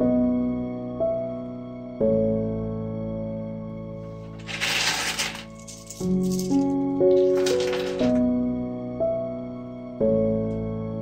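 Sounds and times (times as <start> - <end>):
slow background music: 0.0 - 11.0
small hard pieces rattling into box: 4.3 - 8.2.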